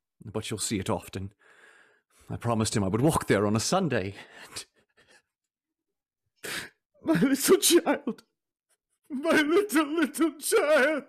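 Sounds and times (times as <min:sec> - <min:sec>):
man sobbing breath: 0:06.4 - 0:08.2.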